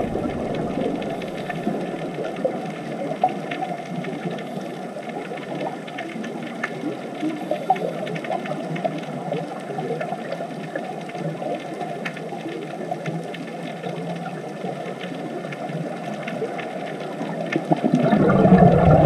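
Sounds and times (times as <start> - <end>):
faint clicks and crackles: 0.0 - 19.0
underwater rush of water: 0.0 - 19.0.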